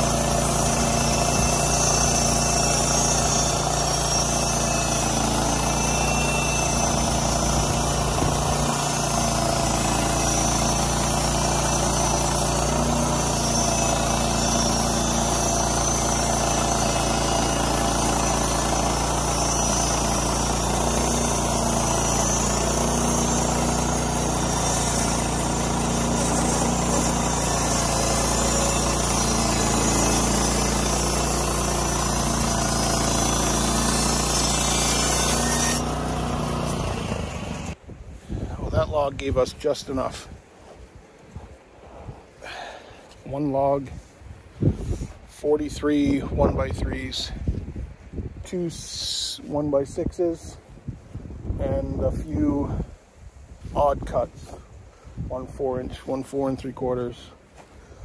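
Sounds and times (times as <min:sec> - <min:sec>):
band blade cutting wood: 0:00.0 - 0:37.8
sawmill engine running: 0:00.0 - 0:37.8.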